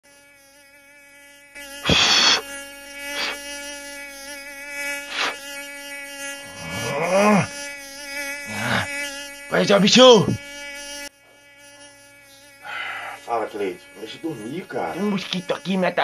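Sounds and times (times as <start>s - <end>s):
mosquito whine: 0.1s - 16.0s.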